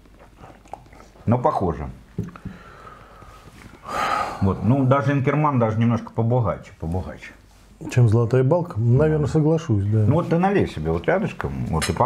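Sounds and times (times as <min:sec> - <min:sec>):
man speaking: 0:01.2 - 0:02.0, 0:04.4 - 0:12.0.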